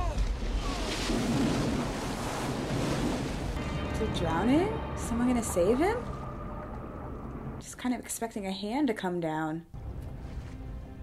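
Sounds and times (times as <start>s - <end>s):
ocean surf breaking: 0.0s - 6.4s.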